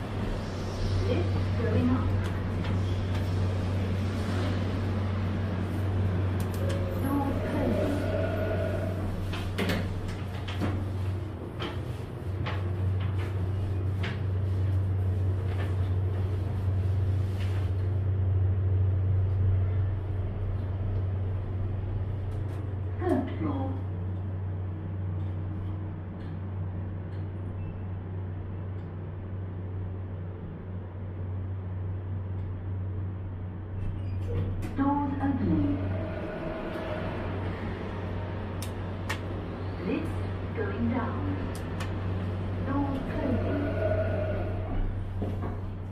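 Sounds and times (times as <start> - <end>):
lift car low hum: 0.0 - 45.9.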